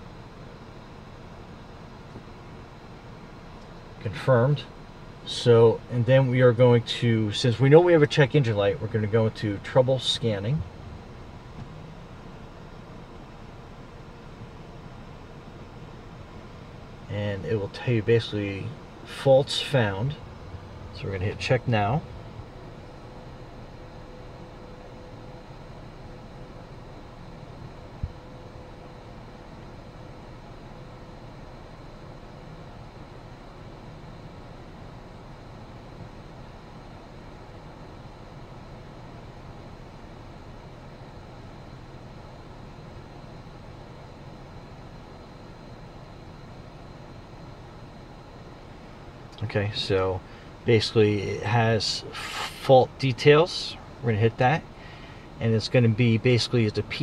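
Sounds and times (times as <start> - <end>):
car engine idling: 0.0 - 40.9
ventilation fan: 0.0 - 57.0.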